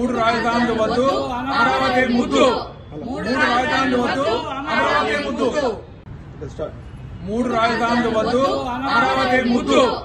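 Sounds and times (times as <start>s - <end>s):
group chanting: 0.1s - 5.8s.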